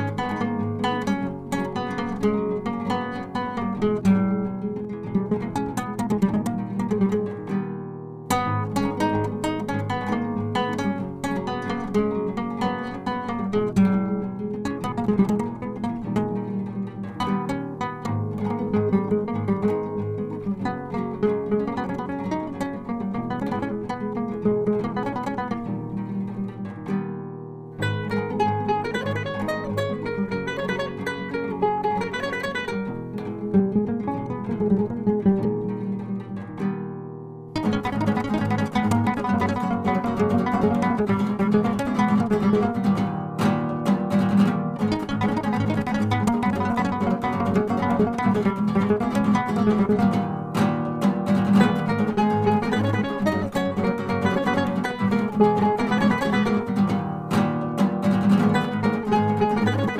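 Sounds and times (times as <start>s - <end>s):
flamenco acoustic guitar: 0.0s - 59.9s.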